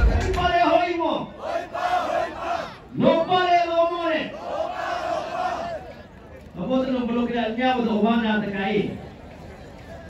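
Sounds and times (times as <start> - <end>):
group chanted shout: 1.4 - 2.8, 4.3 - 5.9.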